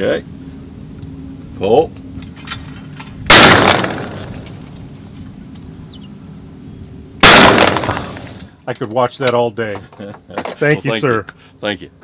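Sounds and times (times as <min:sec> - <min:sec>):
shotgun shot: 0:03.3 - 0:04.4, 0:07.2 - 0:08.4.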